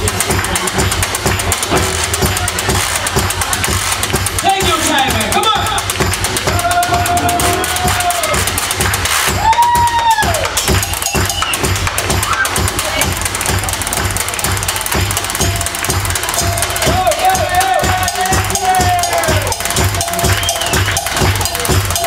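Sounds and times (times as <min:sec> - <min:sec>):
steady low beat: 0:00.0 - 0:22.0
washboard scraping rhythm: 0:00.0 - 0:22.0.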